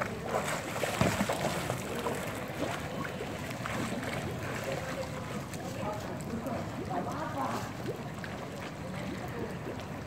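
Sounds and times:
people talking in pool: 0.0 - 10.0
water splashing from swim strokes: 0.0 - 10.0.

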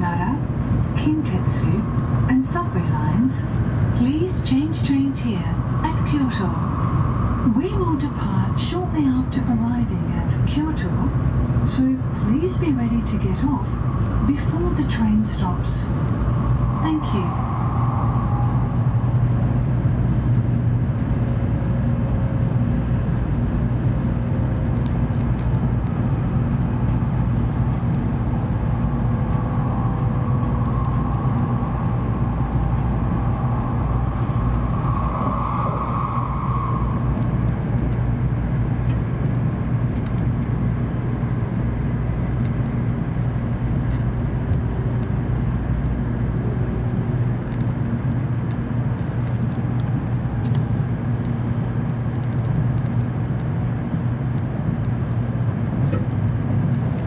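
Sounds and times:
faint whine: 0.0 - 57.0
train rumble inside cabin: 0.0 - 57.0.

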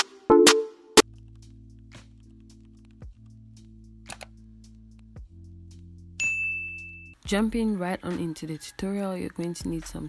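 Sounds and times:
bright bell-like ding: 6.2 - 7.1.

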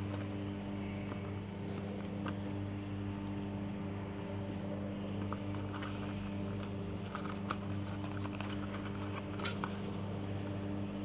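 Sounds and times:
steady low hum: 0.0 - 11.0
cardboard box crinkling and clicking: 5.2 - 9.9.

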